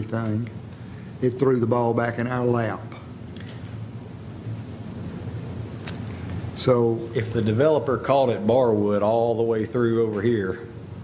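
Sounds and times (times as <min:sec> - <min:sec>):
low rumble and hiss: 0:00.0 - 0:11.0.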